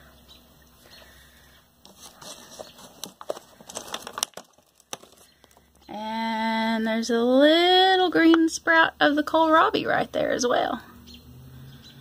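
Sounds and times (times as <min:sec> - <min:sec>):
plastic trays crinkling: 0:01.8 - 0:05.9.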